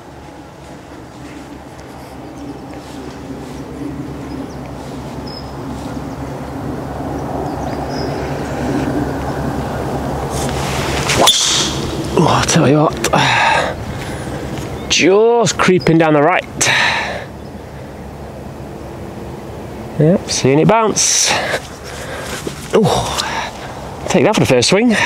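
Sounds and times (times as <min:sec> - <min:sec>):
low hum with pitched tones: 0:00.0 - 0:24.4
swing whoosh: 0:10.3 - 0:12.2
golf club striking ball: 0:11.1 - 0:12.2.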